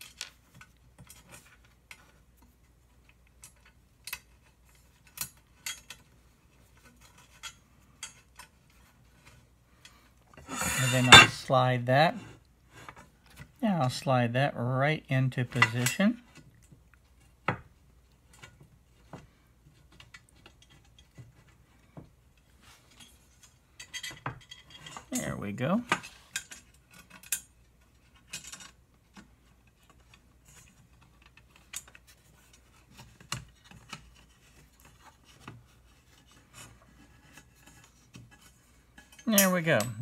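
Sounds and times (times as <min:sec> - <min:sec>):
small metal parts clicking and scraping: 0:03.0 - 0:11.4, 0:22.7 - 0:40.0.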